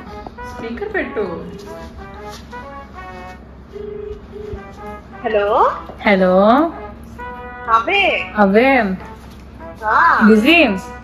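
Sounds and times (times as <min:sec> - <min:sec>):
brief music: 0:00.0 - 0:09.8
phone ringback tone: 0:03.7 - 0:04.8.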